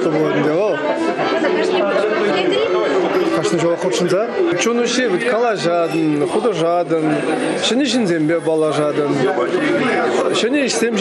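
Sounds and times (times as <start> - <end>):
chatter of voices: 0.0 - 11.0
man talking: 3.1 - 11.0.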